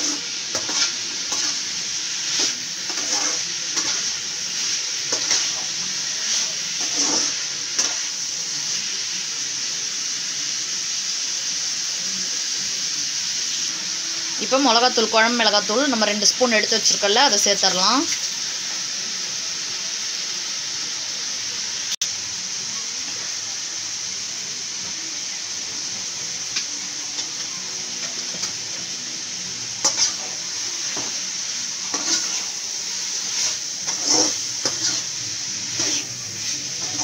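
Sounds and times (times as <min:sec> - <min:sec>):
spatula scraping and stirring: 0:00.0 - 0:08.1, 0:29.8 - 0:31.2, 0:31.8 - 0:37.0
food sizzling in oil: 0:00.0 - 0:37.0.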